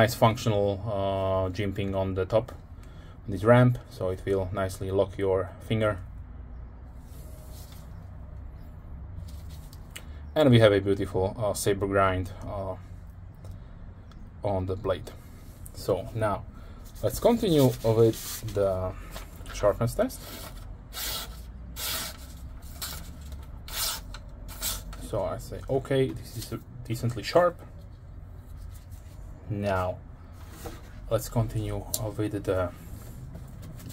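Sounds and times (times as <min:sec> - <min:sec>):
low steady hum: 0:00.0 - 0:33.9
soft rustling: 0:09.2 - 0:09.9, 0:15.2 - 0:19.6, 0:26.2 - 0:29.5.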